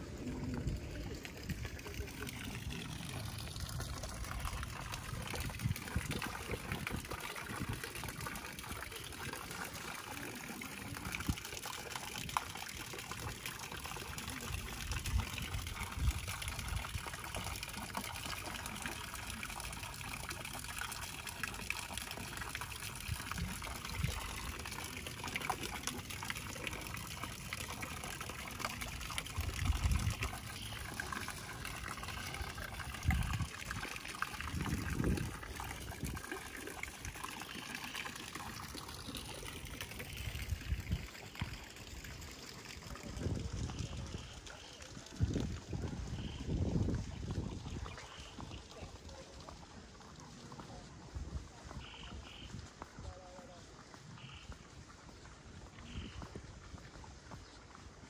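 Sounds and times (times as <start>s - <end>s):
water splashing into pond: 0.0s - 58.0s.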